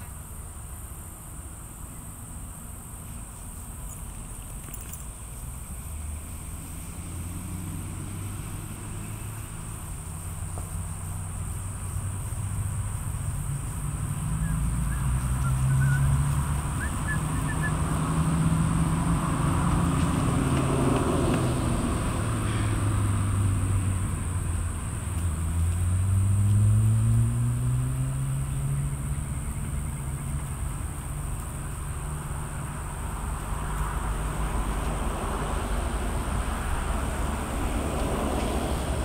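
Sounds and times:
high insect drone: 0.0 - 39.0
vehicle engine hum: 0.0 - 39.0.

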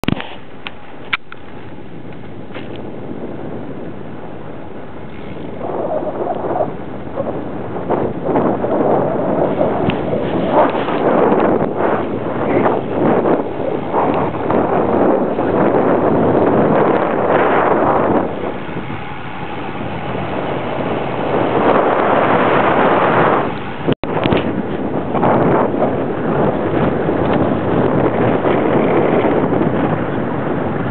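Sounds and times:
wind rushing over microphone: 0.0 - 30.9.

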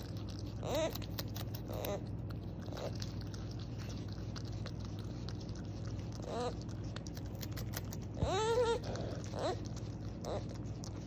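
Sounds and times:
beaver teeth crunching: 0.0 - 11.0.

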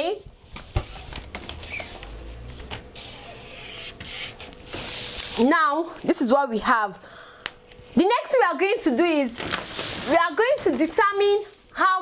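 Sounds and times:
pen scratching across paper: 3.0 - 5.1.

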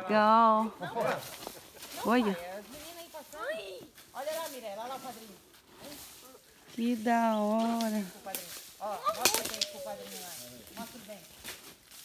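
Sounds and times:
footsteps crunching on dry leaves: 0.6 - 12.0.

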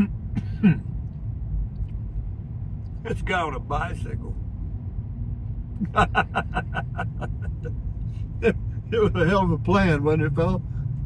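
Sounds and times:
car road rumble: 0.0 - 11.0
man chuckling: 5.8 - 7.8.

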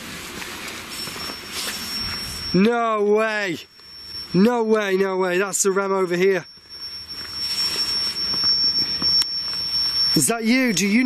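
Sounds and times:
faint shuffling: 0.0 - 11.0
high-pitched alarm tone: 0.7 - 11.0.

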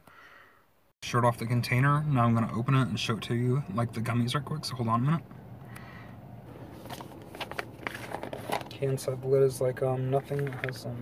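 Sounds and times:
plastic lid scraping and rustling: 6.7 - 9.1, 10.1 - 11.0.

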